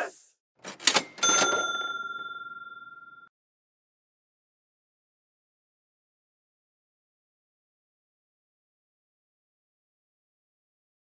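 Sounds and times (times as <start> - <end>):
bell-like ding: 1.0 - 3.3.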